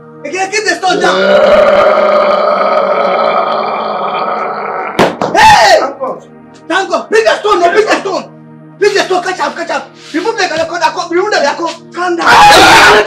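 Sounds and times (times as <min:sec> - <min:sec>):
man shouting: 0:00.9 - 0:02.1, 0:12.2 - 0:13.0
man straining cry: 0:00.9 - 0:05.0, 0:12.2 - 0:13.0
sharp knock: 0:05.0 - 0:05.4.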